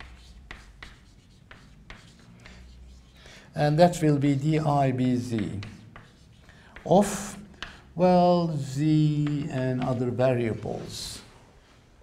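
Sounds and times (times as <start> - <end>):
chalk tapping on a chalkboard: 0.0 - 3.2, 5.2 - 7.9, 9.0 - 10.2.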